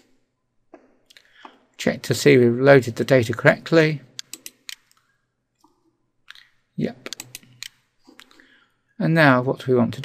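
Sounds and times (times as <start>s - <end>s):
computer mouse clicks: 4.2s - 5.1s, 7.1s - 8.3s.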